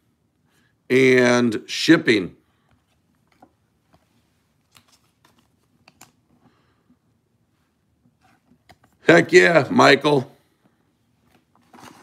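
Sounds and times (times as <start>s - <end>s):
cards clicking and rustling: 2.8s - 6.6s, 11.3s - 12.0s.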